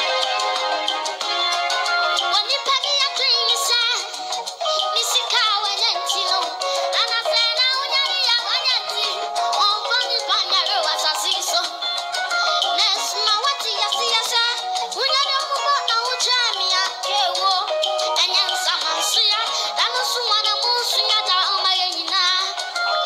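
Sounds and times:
instrumental accompaniment: 0:00.0 - 0:05.0
boy singing into a microphone: 0:02.2 - 0:11.8, 0:12.4 - 0:23.0.

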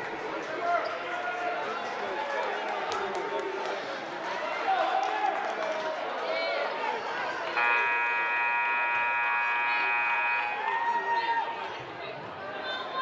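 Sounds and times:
crowd chatter: 0:00.0 - 0:13.0
scoreboard horn blast: 0:07.6 - 0:10.7.

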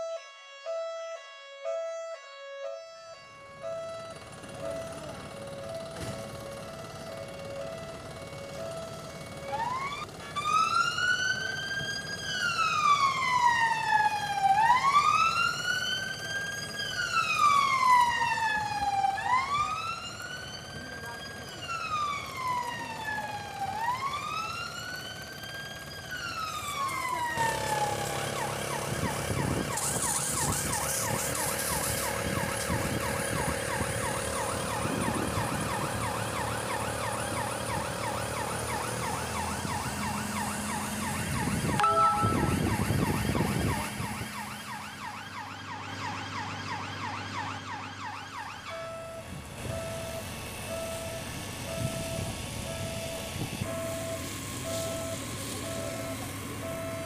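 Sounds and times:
emergency siren wailing: 0:00.0 - 0:57.0
engine running with fast rattle: 0:04.1 - 0:11.5, 0:24.2 - 0:41.8.

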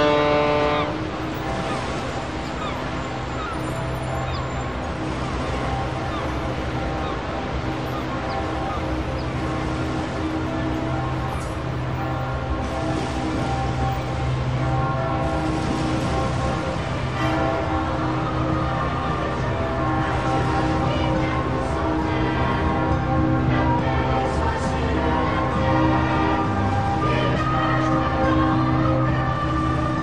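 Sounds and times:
city and harbor noise: 0:00.0 - 0:30.0
long droning tones: 0:00.0 - 0:30.0.

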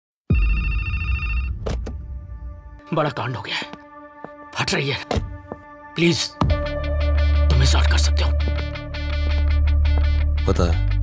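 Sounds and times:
electronic ringing tone: 0:00.3 - 0:01.6.

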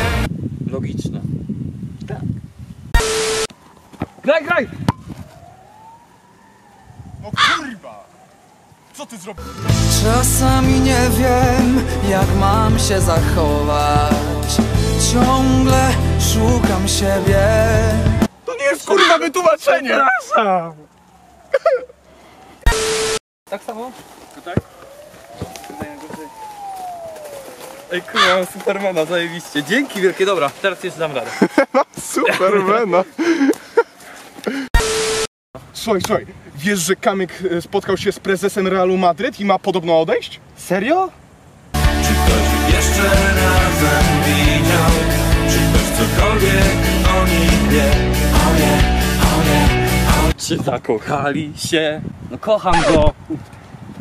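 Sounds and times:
steady beep tone: 0:03.0 - 0:03.5, 0:22.7 - 0:23.2, 0:34.8 - 0:35.3
faint siren-like wailing tone: 0:03.0 - 0:09.4, 0:20.6 - 0:21.8, 0:24.4 - 0:30.2.

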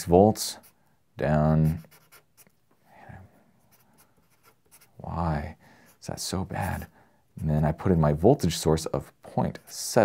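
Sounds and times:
marker drawing on paper: 0:01.6 - 0:02.5, 0:03.6 - 0:05.0.

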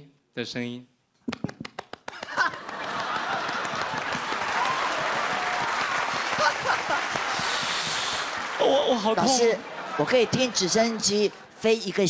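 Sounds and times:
audience applauding: 0:01.7 - 0:12.0
audience laughing: 0:02.2 - 0:04.8, 0:06.2 - 0:11.6
people cheering: 0:02.2 - 0:11.2.

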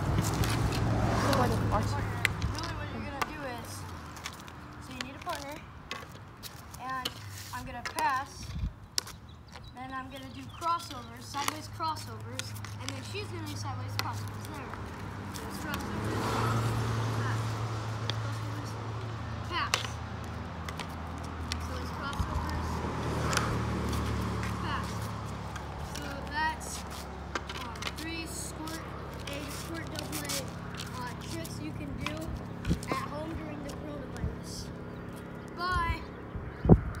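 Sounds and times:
hockey sticks hitting pucks: 0:11.2 - 0:14.8, 0:19.6 - 0:20.0, 0:27.3 - 0:30.5.

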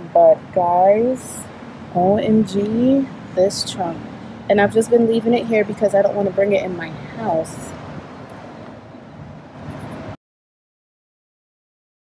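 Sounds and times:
passing cars on a road: 0:00.0 - 0:10.2.

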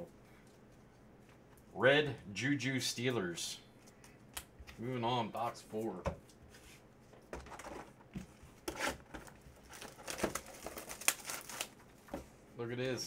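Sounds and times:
plastic shrink wrap crinkling: 0:09.6 - 0:11.9.

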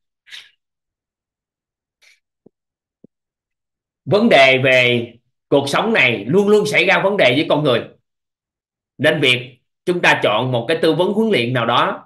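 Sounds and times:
person sharp breath: 0:00.2 - 0:00.6.

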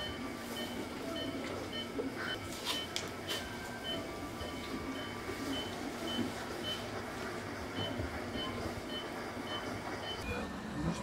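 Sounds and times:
low machine noise: 0:00.0 - 0:11.0.

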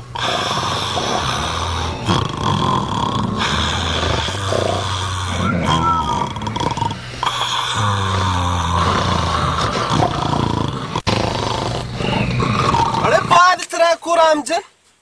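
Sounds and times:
man talking: 0:13.0 - 0:14.8.

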